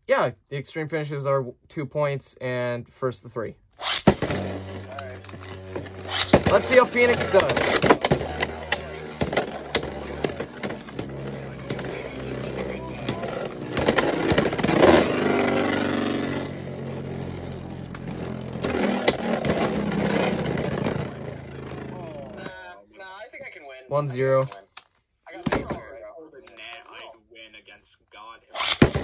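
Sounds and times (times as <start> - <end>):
spinning tops whirring: 3.8 - 22.5, 28.6 - 29.0.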